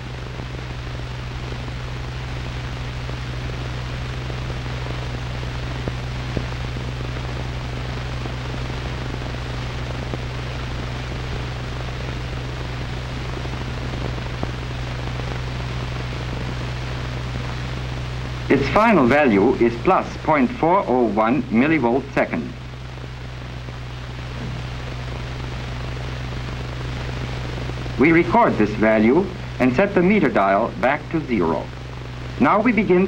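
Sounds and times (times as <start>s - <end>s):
film soundtrack hiss: 0.0s - 33.0s
low constant hum: 0.0s - 33.0s.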